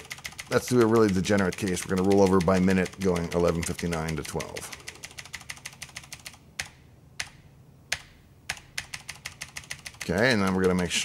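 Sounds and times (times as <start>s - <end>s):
keyboard key tapping: 0.0s - 11.0s.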